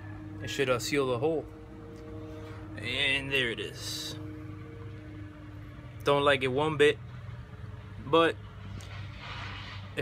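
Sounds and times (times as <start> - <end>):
faint steady tones: 0.0 - 10.0
low background hum: 0.0 - 10.0.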